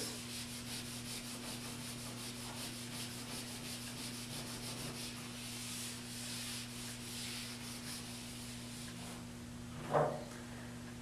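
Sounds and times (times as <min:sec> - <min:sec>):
steady low hum: 0:00.0 - 0:11.0
eraser rubbing on whiteboard: 0:00.2 - 0:09.2.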